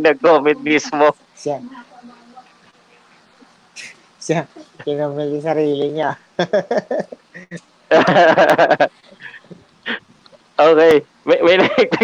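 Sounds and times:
man laughing loudly: 6.4 - 10.0, 11.5 - 12.0.

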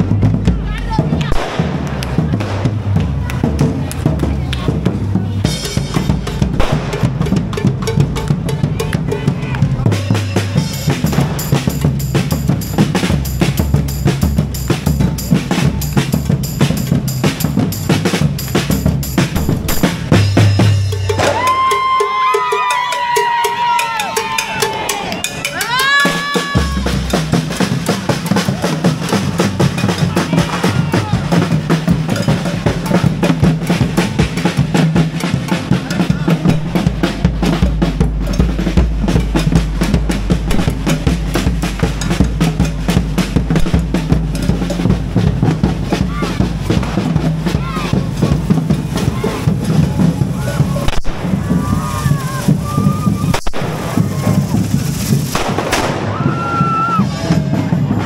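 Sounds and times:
bass drum strokes: 0.0 - 22.0, 24.3 - 58.0
snare drums playing: 0.0 - 58.0.

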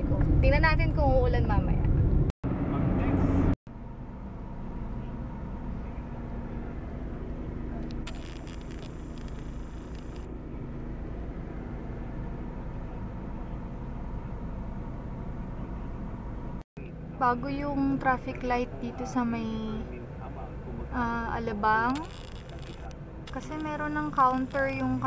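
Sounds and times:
car road and engine rumble: 0.0 - 25.0.

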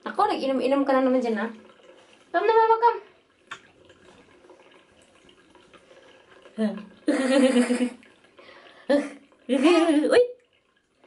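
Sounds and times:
water sloshing in plastic tub: 0.0 - 11.0.

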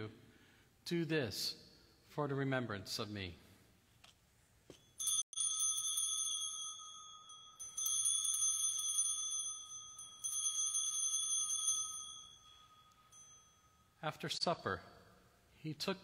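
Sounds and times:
bell ringing: 4.7 - 14.0.

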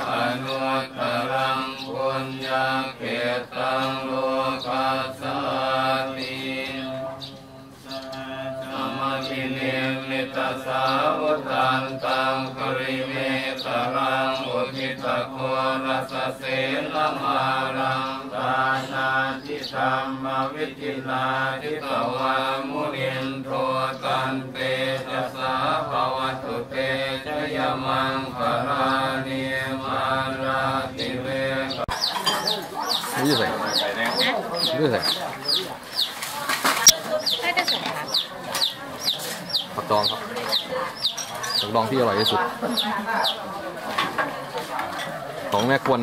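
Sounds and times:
monks chanting in unison: 0.0 - 36.0, 37.8 - 46.0
bird chirping: 6.1 - 9.6, 31.4 - 43.4
people talking: 32.2 - 46.0.

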